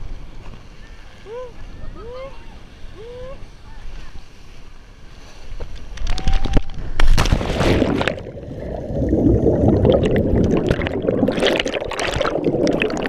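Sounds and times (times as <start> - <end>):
loud splash into water: 7.0 - 13.0
muffled underwater bubbles: 7.2 - 13.0.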